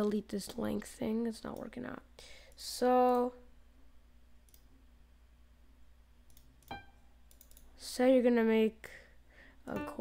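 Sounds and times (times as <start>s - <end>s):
low electrical hum: 0.0s - 10.0s
computer mouse clicks: 4.4s - 4.7s, 6.3s - 7.7s.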